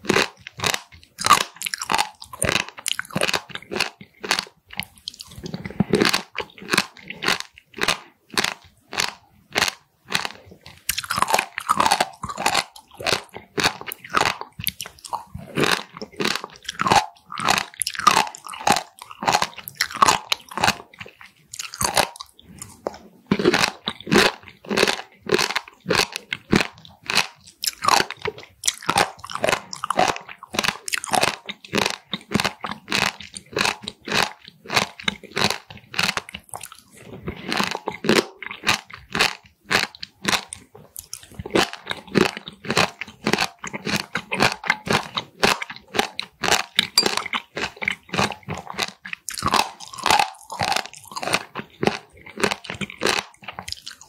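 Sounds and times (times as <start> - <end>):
crisp crunches of chewing: 0.0 - 54.0.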